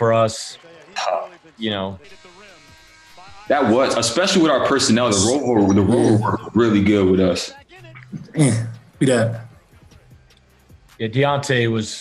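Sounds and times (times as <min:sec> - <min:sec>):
man speaking: 0:00.0 - 0:09.6, 0:11.0 - 0:12.0
faint background sound: 0:00.0 - 0:12.0.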